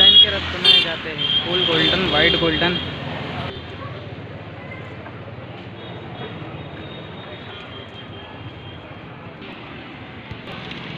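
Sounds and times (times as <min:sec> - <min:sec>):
outdoor noise: 0:00.0 - 0:10.9.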